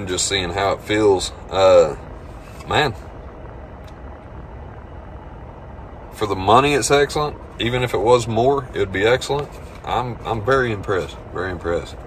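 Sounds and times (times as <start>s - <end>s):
low hum inside vehicle cab: 0.0s - 12.0s.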